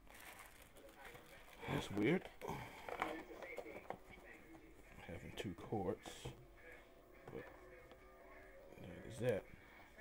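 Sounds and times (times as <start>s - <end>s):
packaging handling noises: 0.0s - 4.3s.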